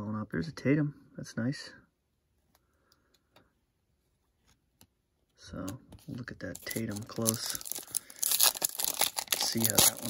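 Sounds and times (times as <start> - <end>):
trading cards being shuffled: 5.6 - 10.0.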